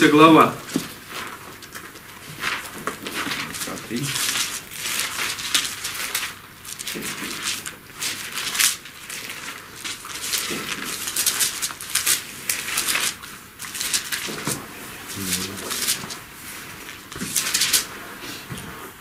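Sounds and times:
pages rustling: 0.0 - 19.0.

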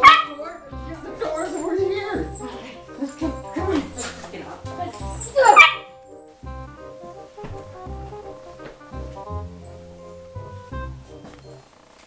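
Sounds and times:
dog barking: 0.0 - 2.8, 4.9 - 6.0
background music: 0.0 - 12.0.

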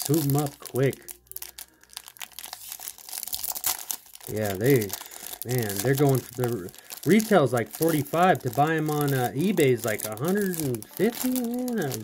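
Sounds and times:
plastic wrapper crinkling and tearing: 0.0 - 12.0.

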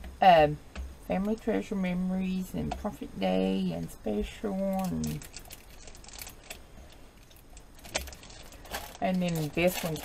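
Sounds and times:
plastic packaging crinkling: 4.6 - 10.0.

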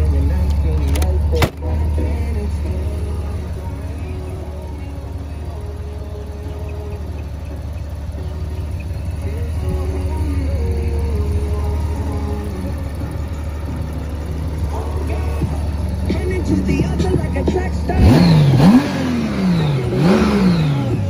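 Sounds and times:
hip-hop music with sung vocals: 0.0 - 21.0
motorcycle engine idling: 0.0 - 21.0.

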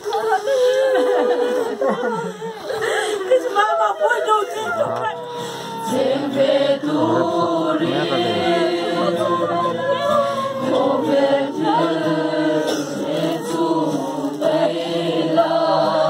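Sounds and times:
group singing a hymn: 5.8 - 16.0.

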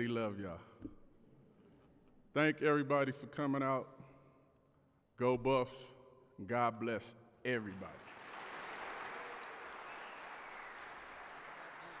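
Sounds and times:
audience applauding: 8.0 - 12.0.

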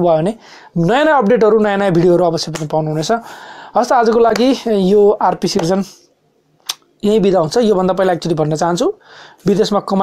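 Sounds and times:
man speaking: 0.0 - 6.1, 7.0 - 10.0.

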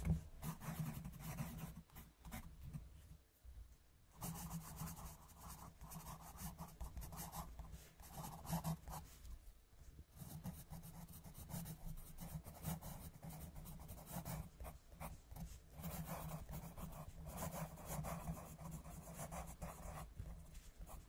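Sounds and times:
colored pencil scratching on paper: 0.0 - 2.8, 4.2 - 9.2, 10.2 - 21.0.

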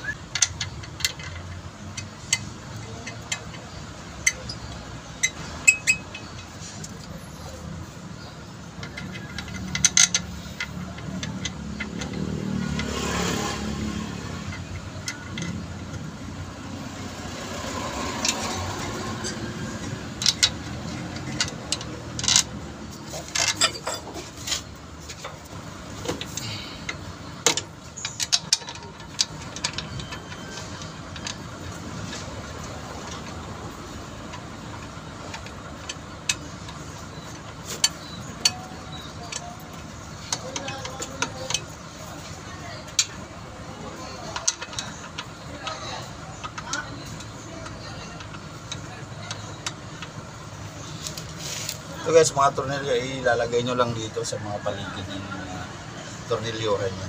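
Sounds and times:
metallic clicks and knocks: 0.0 - 52.0.

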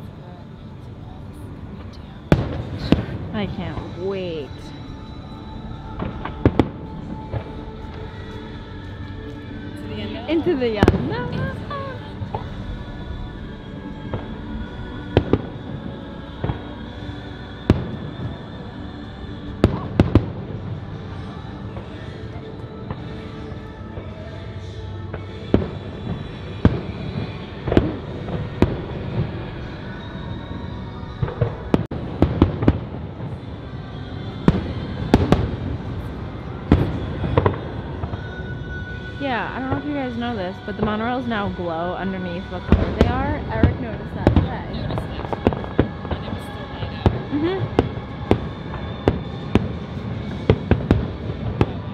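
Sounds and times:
background music: 0.0 - 51.9
fireworks bursting: 9.9 - 18.5, 31.2 - 33.5, 34.4 - 51.9.

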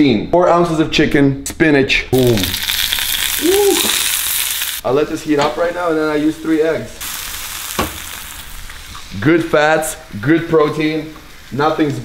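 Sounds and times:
egg sizzling in frying pan: 2.2 - 12.0.

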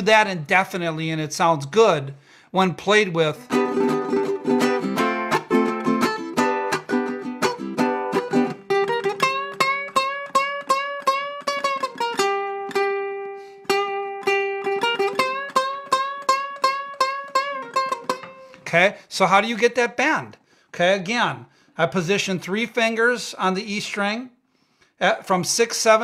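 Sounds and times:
ukulele string-bend riff: 3.2 - 18.6.

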